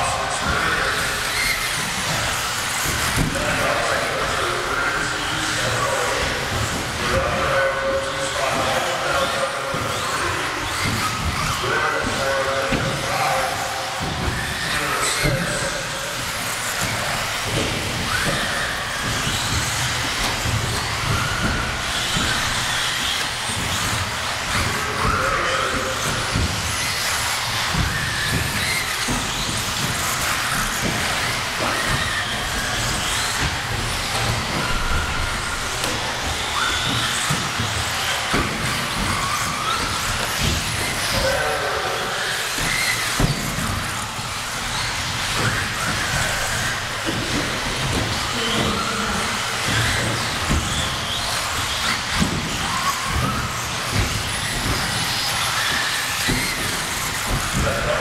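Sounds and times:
small motors whining: 0.0s - 58.0s
toy cars knocking and clattering: 0.0s - 58.0s.

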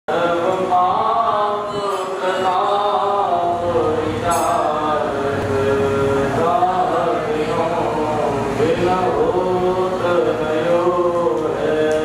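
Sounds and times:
group chanting a hymn: 0.1s - 12.0s.

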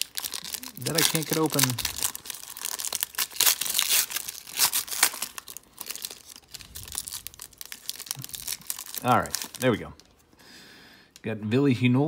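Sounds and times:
foil wrapper crinkling and tearing: 0.0s - 10.2s.

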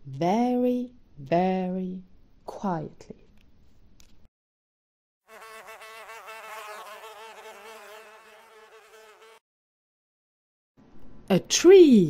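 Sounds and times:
buzzing insect: 5.3s - 9.4s.

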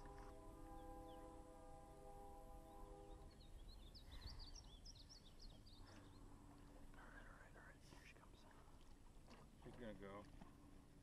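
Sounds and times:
small birds chirping: 3.1s - 8.6s.

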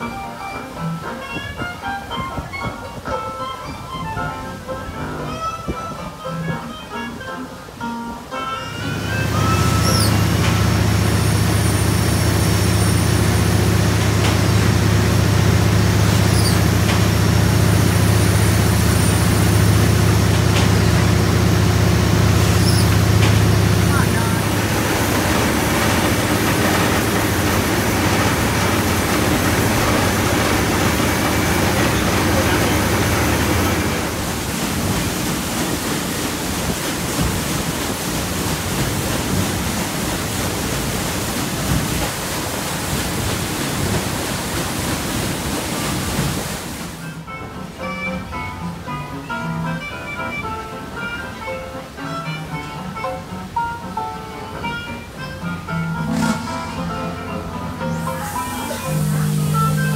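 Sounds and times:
moving water: 0.0s - 59.9s
wind: 0.0s - 59.9s
engine room machinery hum: 8.8s - 47.3s, 55.5s - 59.9s.

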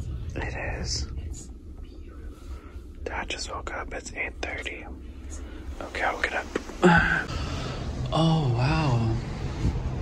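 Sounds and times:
low steady hum: 0.0s - 10.0s
people whispering: 0.2s - 7.3s.

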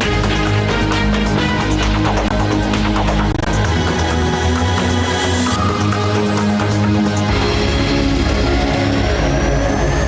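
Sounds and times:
television news theme music: 0.0s - 10.0s.

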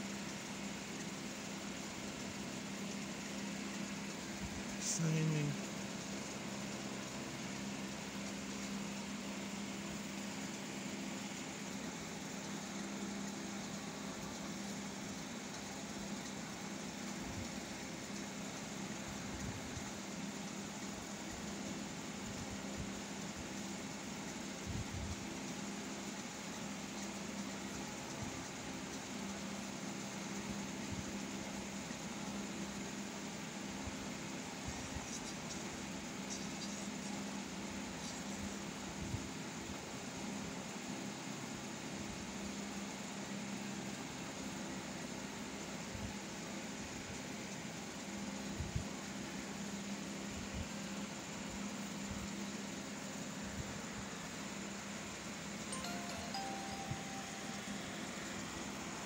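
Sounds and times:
fan or motor humming: 0.0s - 59.0s.

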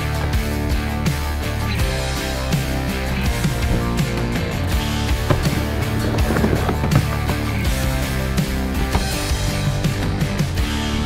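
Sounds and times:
guitar rock music: 0.0s - 11.0s
skateboard wheels rolling on concrete: 0.0s - 11.0s.

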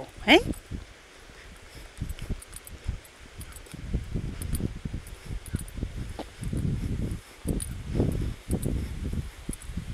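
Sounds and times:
rustling on phone microphone: 0.3s - 9.9s
footsteps on asphalt: 0.6s - 9.9s.

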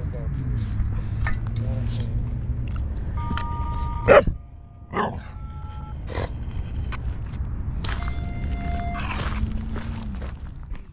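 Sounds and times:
dog barking: 4.0s - 5.3s.

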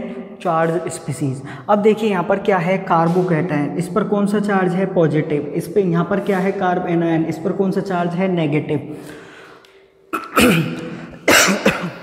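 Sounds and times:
man coughing: 10.1s - 12.0s.

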